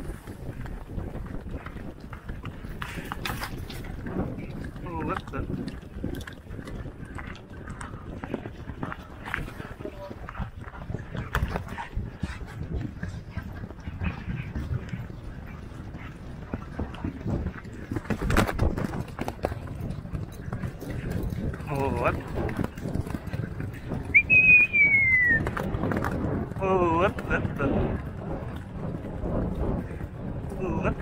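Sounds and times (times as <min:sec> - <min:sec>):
horse galloping on turf: 0:00.0 - 0:31.0
wind rumbling on microphone: 0:00.0 - 0:31.0.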